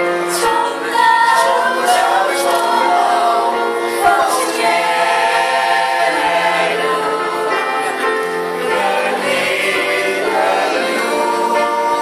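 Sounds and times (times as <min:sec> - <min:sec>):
women's choir singing: 0:00.0 - 0:12.0.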